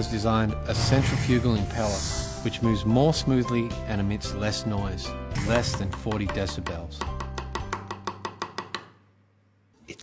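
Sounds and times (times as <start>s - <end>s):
faint background music: 0.0s - 10.0s
knife chopping on wooden board: 5.4s - 8.9s.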